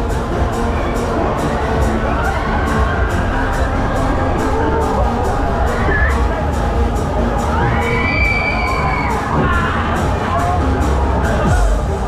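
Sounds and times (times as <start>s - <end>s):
loud music with heavy bass: 0.0s - 12.0s
riders screaming and shouting: 0.5s - 12.0s.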